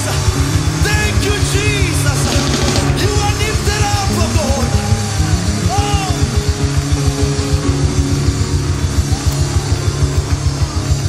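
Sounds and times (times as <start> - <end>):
fast kick drum beat: 0.0 - 11.0
gospel band playing: 0.0 - 11.0.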